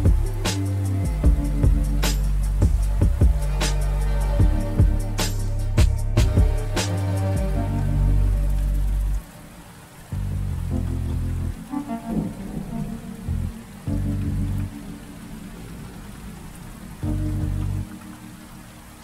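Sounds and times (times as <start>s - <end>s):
rain falling on wet surface: 0.0s - 19.0s
soft music with deep notes: 0.0s - 19.0s.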